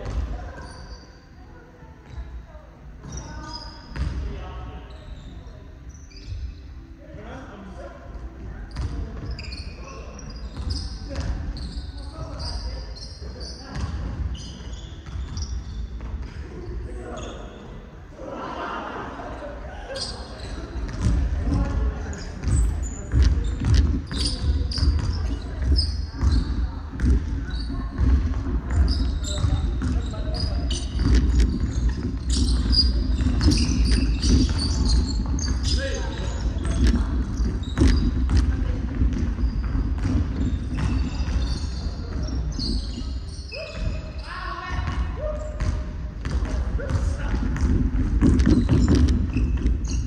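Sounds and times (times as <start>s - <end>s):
basketball bouncing: 0.0s - 0.4s, 4.0s - 4.2s, 13.7s - 14.2s, 20.9s - 21.8s, 22.4s - 42.9s, 44.7s - 50.0s
sneakers squeaking on hardwood: 0.0s - 1.4s, 3.0s - 6.9s, 8.2s - 18.0s, 19.8s - 50.0s
players' voices: 16.2s - 50.0s.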